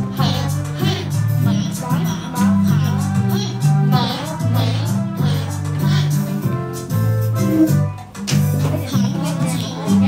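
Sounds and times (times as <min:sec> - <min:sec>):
backing track with bass line: 0:00.0 - 0:10.0
child singing: 0:00.1 - 0:06.2, 0:08.6 - 0:10.0.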